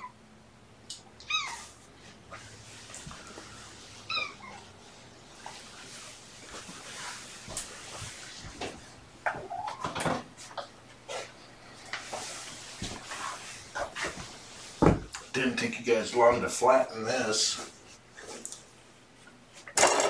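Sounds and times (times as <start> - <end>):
kitten meowing: 1.2 - 1.7, 4.1 - 4.6
knocks and rustling: 6.6 - 11.3, 11.9 - 15.3.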